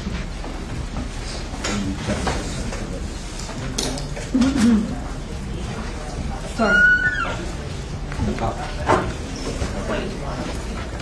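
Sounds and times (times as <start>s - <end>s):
people talking: 1.6s - 11.0s.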